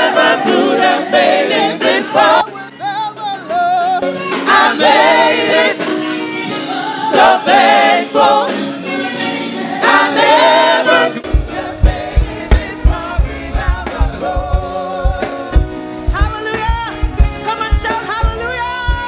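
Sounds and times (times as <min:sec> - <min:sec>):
choir singing: 0:00.0 - 0:02.6, 0:04.4 - 0:15.6
lead singers on microphones: 0:00.0 - 0:19.0
steady low drum beat: 0:11.2 - 0:19.0.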